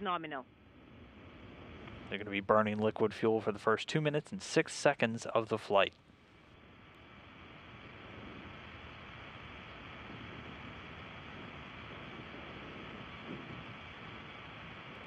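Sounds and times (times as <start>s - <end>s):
distant rocket engine roar: 0.0s - 15.0s.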